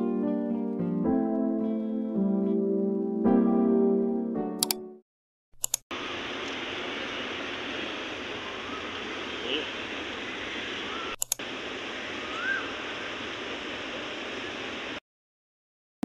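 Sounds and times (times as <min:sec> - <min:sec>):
traffic hiss: 0:05.9 - 0:15.0.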